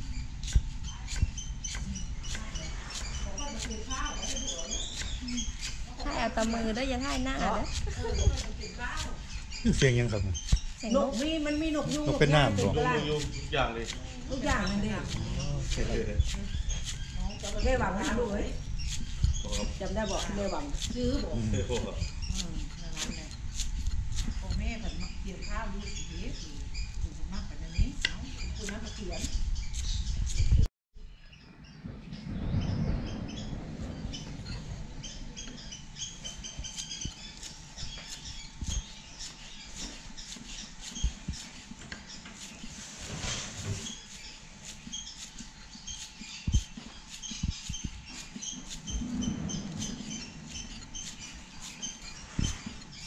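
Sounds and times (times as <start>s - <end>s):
faint bird chirps: 0.0s - 53.0s
people talking: 2.4s - 16.6s, 17.2s - 18.6s, 19.4s - 23.3s, 24.4s - 29.4s
knife chopping on wooden board: 10.4s - 24.9s
low rumble: 31.6s - 38.6s.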